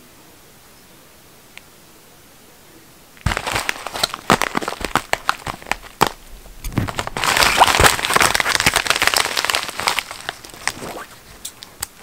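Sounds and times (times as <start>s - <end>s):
plastic mailer crinkling: 3.2s - 11.8s.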